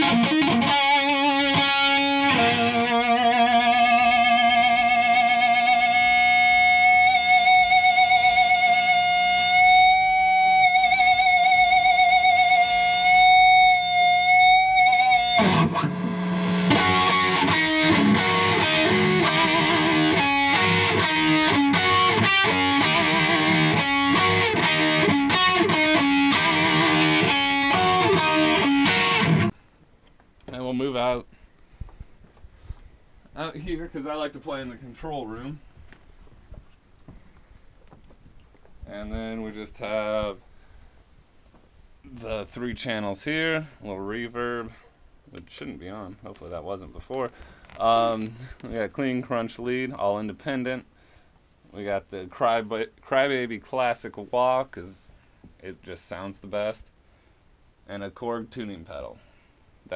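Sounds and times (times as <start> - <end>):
distorted electric guitar lead: 0.0 - 29.5.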